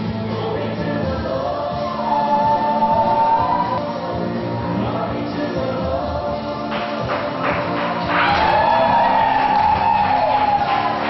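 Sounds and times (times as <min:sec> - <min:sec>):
choir singing gospel: 0:00.0 - 0:07.4.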